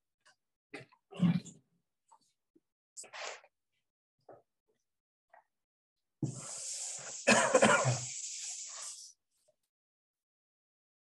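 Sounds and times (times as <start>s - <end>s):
chalkboard eraser wiping: 6.2s - 9.2s
man coughing: 7.2s - 8.1s.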